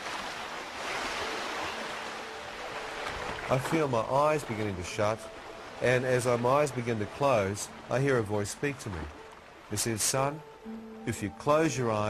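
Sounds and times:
surf washing on beach: 0:00.0 - 0:12.0
faint held tone: 0:10.4 - 0:12.0.

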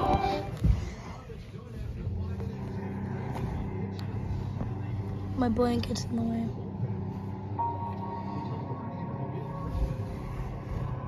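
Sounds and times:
low rumbling drone: 0:00.3 - 0:11.0.

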